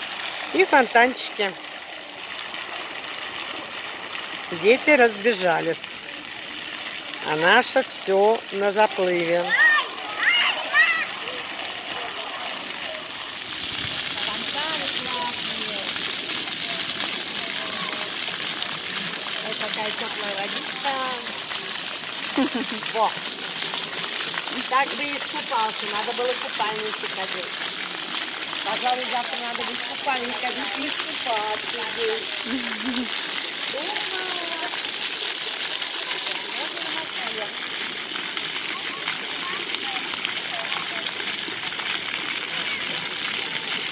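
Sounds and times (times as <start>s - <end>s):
fountain jets splashing on paving: 0.0s - 43.9s
faint voices: 5.9s - 21.5s
child's voice: 9.4s - 11.5s, 38.7s - 41.2s.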